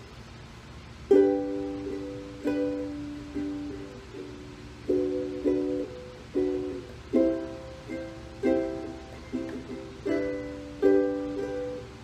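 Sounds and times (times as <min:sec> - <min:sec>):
ukulele strumming: 0:01.0 - 0:12.0.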